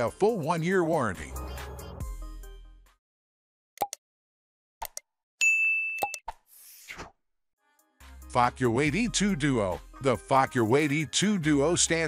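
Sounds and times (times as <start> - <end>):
notification bell ding: 5.4 - 6.2.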